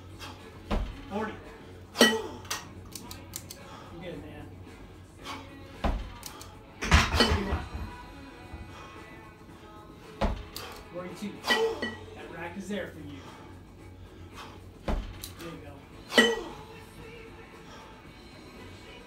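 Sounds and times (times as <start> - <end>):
kettlebells clanking: 0.0 - 2.8, 6.8 - 8.8, 10.2 - 12.4, 14.8 - 16.7.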